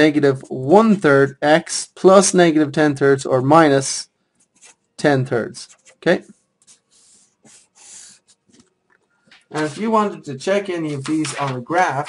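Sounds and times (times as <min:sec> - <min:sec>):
soft breath puffs: 0:06.3 - 0:09.3.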